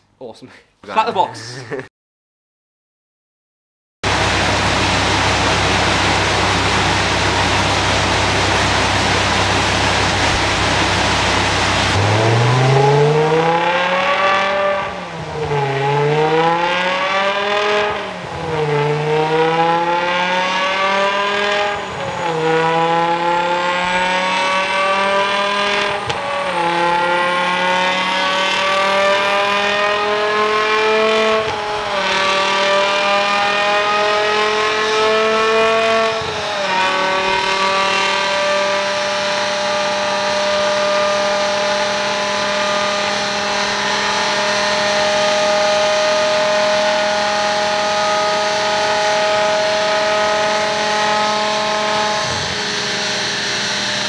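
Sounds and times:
high whine: 4.0s - 54.0s
car engine revving through gears: 4.1s - 54.0s.

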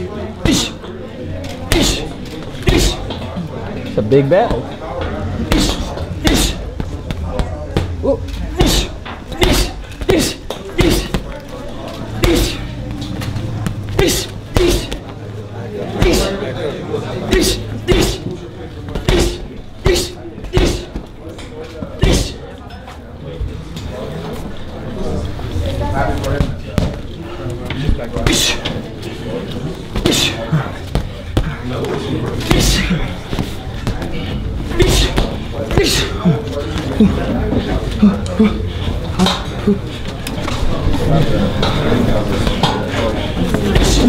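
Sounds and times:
crowd chatter: 0.0s - 44.0s
boxing gloves punching heavy bag: 8.5s - 11.3s.

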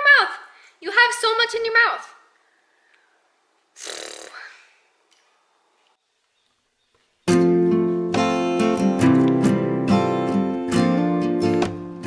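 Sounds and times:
person exhaling: 3.8s - 4.9s.

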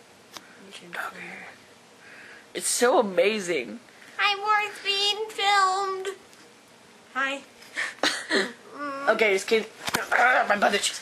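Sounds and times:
faint whispering: 0.6s - 1.6s.

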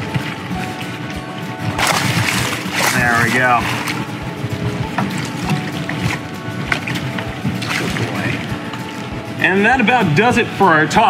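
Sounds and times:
crocodile jaws cracking and crunching: 1.8s - 4.0s.

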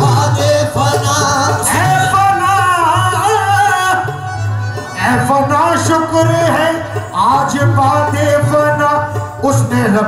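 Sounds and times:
harmonium accompaniment: 0.0s - 10.0s.

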